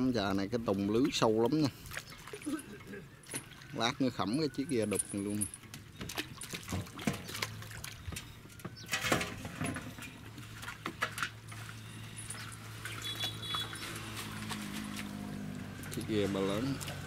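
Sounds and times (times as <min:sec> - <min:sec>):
water splashes and drips: 0:00.6 - 0:17.0
fish thrashing in net: 0:10.5 - 0:15.9.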